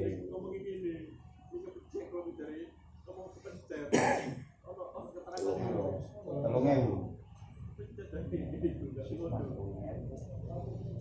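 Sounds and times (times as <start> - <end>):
man clearing his throat: 3.9 - 4.4.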